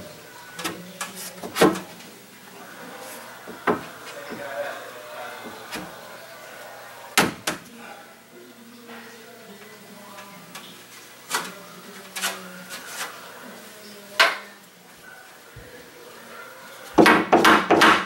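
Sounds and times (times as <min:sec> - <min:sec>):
wood and tools knocking: 0:03.6 - 0:04.4, 0:17.0 - 0:18.0.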